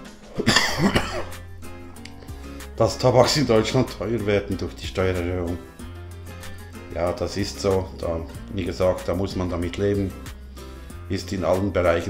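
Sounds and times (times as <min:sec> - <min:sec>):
background music: 0:00.0 - 0:12.0
man coughing and clearing throat: 0:00.3 - 0:01.5.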